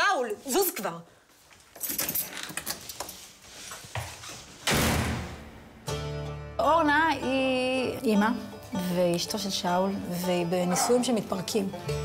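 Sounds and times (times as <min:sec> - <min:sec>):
loud bang: 0:04.7 - 0:05.9.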